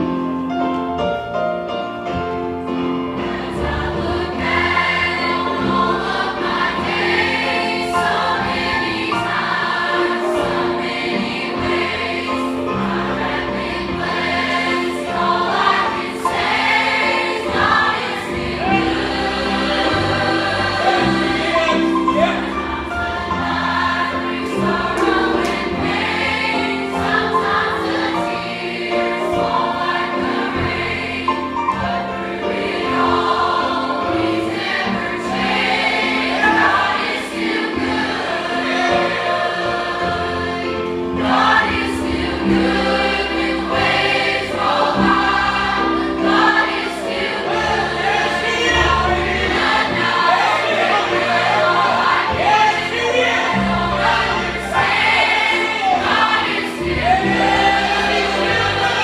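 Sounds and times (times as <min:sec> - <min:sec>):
choir singing gospel song: 0:02.8 - 0:59.0
low instrumental backing: 0:10.6 - 0:59.0.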